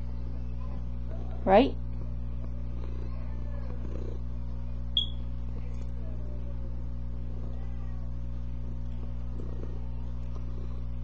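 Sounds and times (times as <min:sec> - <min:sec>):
cat purring: 0:00.3 - 0:11.0.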